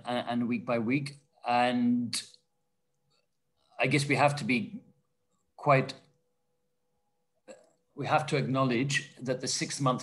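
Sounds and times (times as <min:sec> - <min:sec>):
man speaking: 0:00.0 - 0:02.4, 0:03.7 - 0:06.2, 0:07.5 - 0:10.0.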